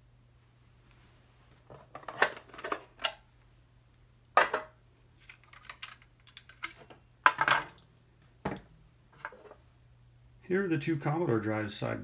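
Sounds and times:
plastic and metal clicks and rattles: 5.2s - 7.5s.

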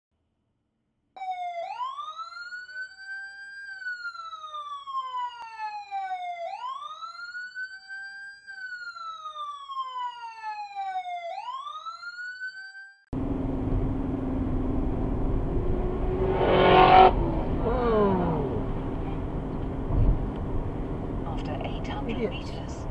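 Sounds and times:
police siren wailing: 1.2s - 13.1s
road noise inside moving car: 13.2s - 22.9s.

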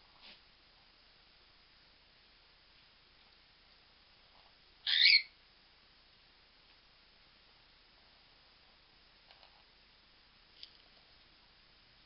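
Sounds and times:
parrot call: 4.8s - 5.4s.

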